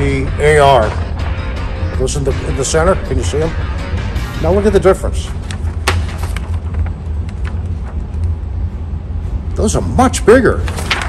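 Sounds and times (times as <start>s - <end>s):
steady low rumble: 0.0s - 11.0s
paper rustling: 5.3s - 8.3s, 10.6s - 11.0s.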